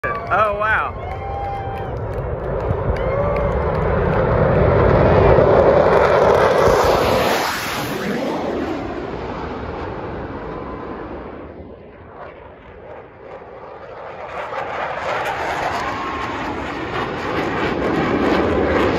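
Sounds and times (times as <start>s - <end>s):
jet noise: 0.0s - 18.9s.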